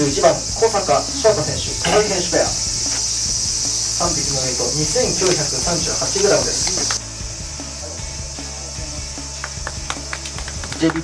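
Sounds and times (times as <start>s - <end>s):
high-pitched insect chorus: 0.0s - 11.0s
indistinct voices: 0.0s - 11.0s
sharp clicks: 4.9s - 7.0s.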